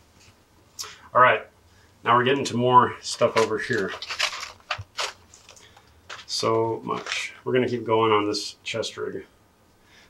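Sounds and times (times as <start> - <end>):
plastic tray scraping and rustling: 3.1 - 7.4.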